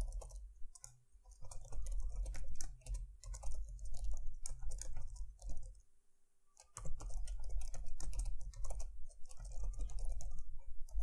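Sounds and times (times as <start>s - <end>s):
typing on computer keyboard: 0.0s - 5.8s, 6.6s - 11.0s
faint steady hum: 0.0s - 11.0s.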